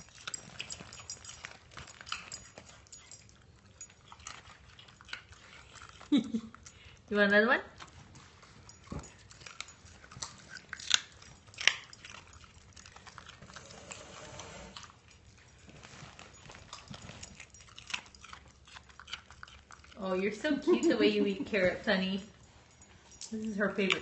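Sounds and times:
dog crunching carrot: 0.0s - 24.0s.

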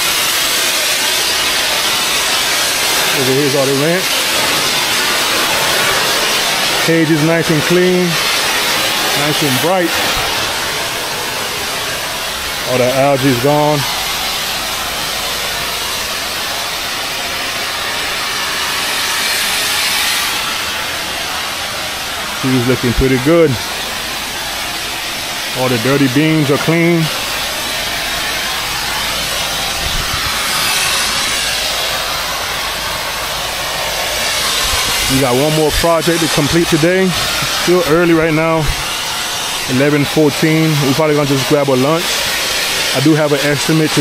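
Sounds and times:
pressure washer spraying water: 0.0s - 44.0s.

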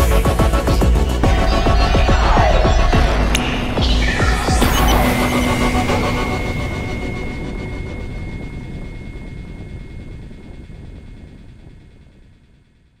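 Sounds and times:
low rumbling electronic texture: 0.0s - 13.0s
thin steady high tone: 1.0s - 12.2s.

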